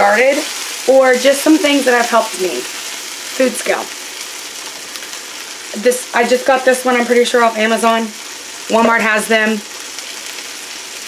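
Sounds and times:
food sizzling in a frying pan: 0.0s - 11.0s.

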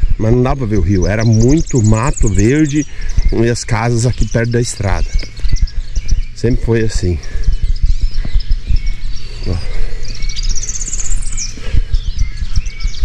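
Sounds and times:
low rumbling microphone noise: 0.0s - 13.0s
small bird trilling: 0.0s - 13.0s.

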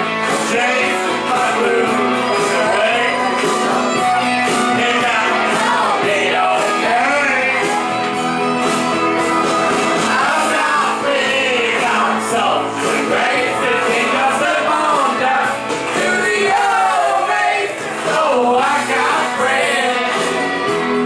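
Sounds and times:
person singing: 0.0s - 21.0s
rock backing track: 0.0s - 21.0s
person shouting singing: 0.5s - 8.0s.

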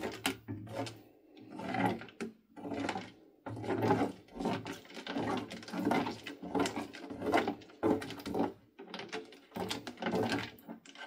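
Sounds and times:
spatula stirring thick slime: 0.0s - 11.0s.

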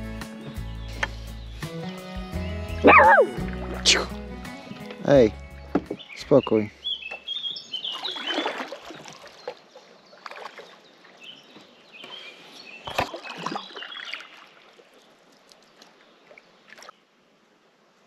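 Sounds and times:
short high bird chirps: 0.7s - 3.4s
kayak paddle splashing water: 2.9s - 6.0s, 7.0s - 17.0s.

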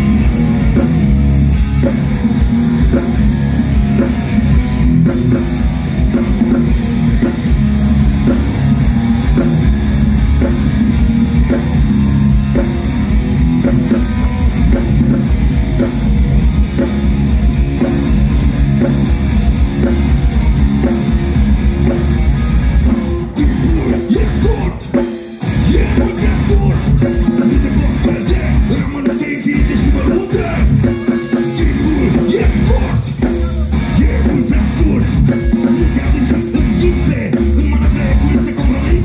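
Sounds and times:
heavy metal band playing live: 0.0s - 39.0s.

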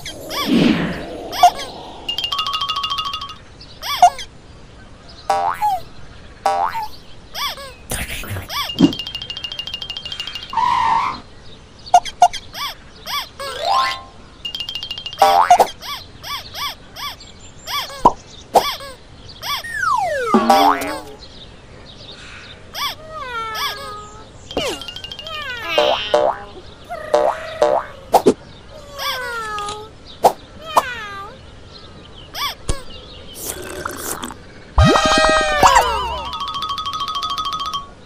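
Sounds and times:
squeaky character cries: 3.8s - 4.3s, 8.4s - 8.8s, 15.6s - 21.2s, 22.8s - 28.2s, 28.8s - 29.9s, 30.6s - 31.4s, 32.4s - 32.8s, 34.8s - 36.6s
cartoon boings pops and clicks: 20.0s - 21.2s, 27.1s - 28.4s, 34.8s - 36.4s.

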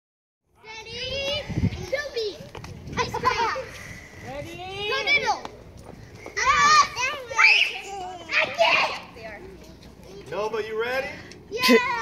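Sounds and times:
children calling out excitedly: 0.6s - 5.5s, 6.1s - 10.4s, 11.3s - 12.0s.

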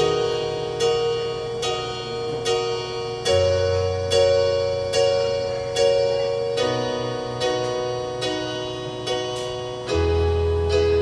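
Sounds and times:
electronic keyboard chord: 0.0s - 11.0s.

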